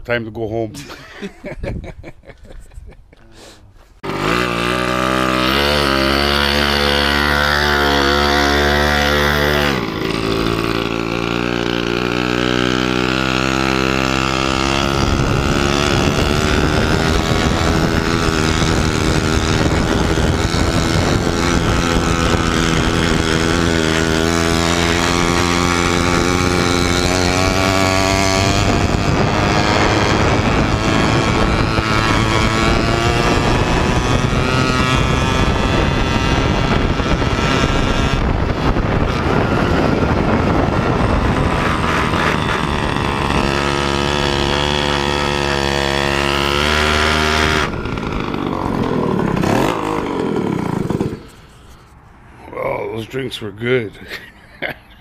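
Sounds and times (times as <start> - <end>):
wind buffeting microphone: 0.8 - 3.0, 4.1 - 52.3
small engine running: 4.0 - 52.3.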